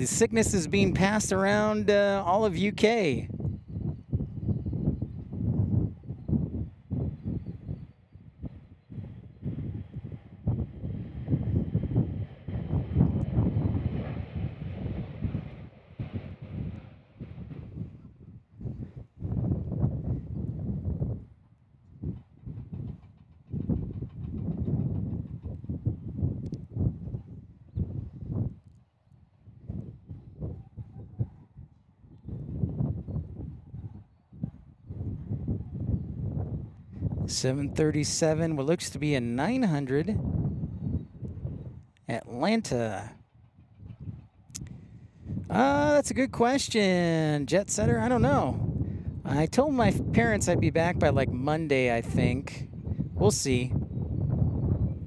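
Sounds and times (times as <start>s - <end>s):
faint jet engine whine: 0.0s - 55.0s
wind buffeting microphone: 0.0s - 55.0s.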